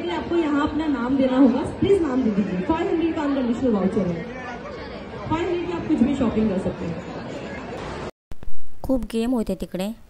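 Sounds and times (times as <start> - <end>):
indistinct chatter: 0.0 - 8.1.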